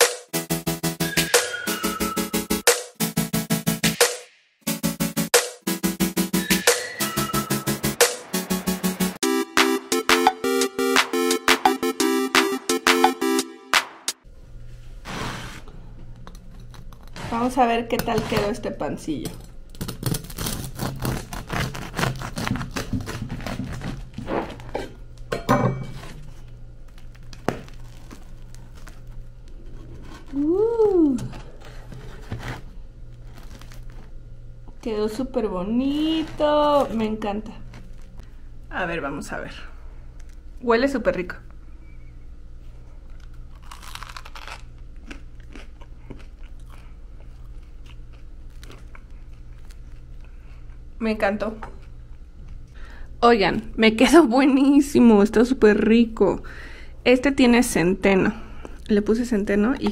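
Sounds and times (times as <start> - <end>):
knife sawing through bread crust: 15.0 - 15.7, 20.0 - 24.3
bread crust crunching: 16.2 - 17.2, 19.7 - 25.3, 26.0 - 34.3, 43.0 - 50.9
crunchy bread bite: 26.9 - 30.4, 43.1 - 50.9.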